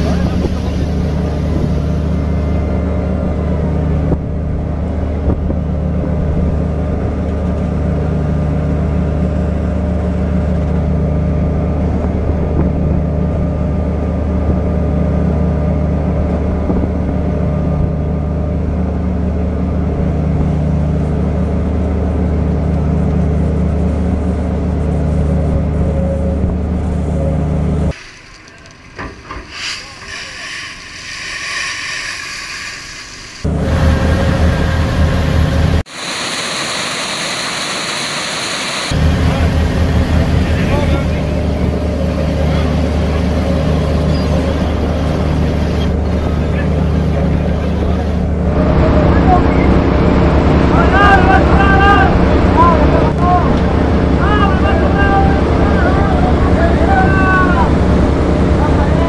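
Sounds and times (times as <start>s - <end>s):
loud noise: 0.0s - 3.4s, 27.9s - 59.0s
low drone of boat engine: 0.0s - 59.0s
hiss: 27.9s - 34.6s, 35.9s - 39.0s.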